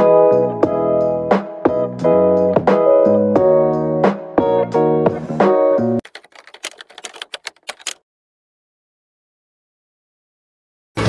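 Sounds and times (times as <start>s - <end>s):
keyboard typing clicks: 6.0s - 8.0s.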